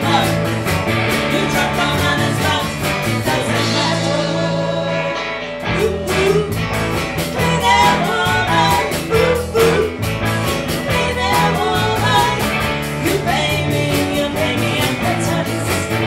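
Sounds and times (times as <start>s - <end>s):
drum kit beat: 0.0s - 4.4s, 5.6s - 16.0s
person singing: 0.0s - 10.0s, 10.7s - 16.0s
electric guitars: 0.0s - 16.0s.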